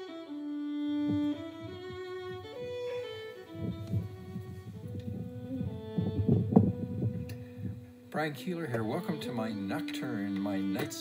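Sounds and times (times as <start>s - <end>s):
music with long held notes: 0.0s - 11.0s
low uneven rumbling: 0.9s - 9.0s.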